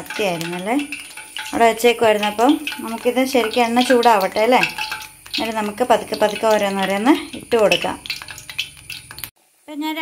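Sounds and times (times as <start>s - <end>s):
woman speaking: 0.0s - 0.9s, 1.5s - 4.8s, 5.4s - 8.0s, 9.7s - 10.0s
oil sizzling in a frying pan: 0.0s - 10.0s.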